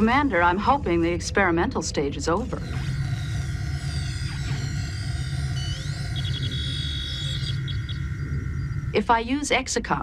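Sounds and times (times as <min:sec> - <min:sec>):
steady low hum: 0:00.0 - 0:10.0
held high electronic tones: 0:02.6 - 0:09.4
rising electronic chirp: 0:02.6 - 0:09.5
short electronic beeps: 0:03.9 - 0:08.9.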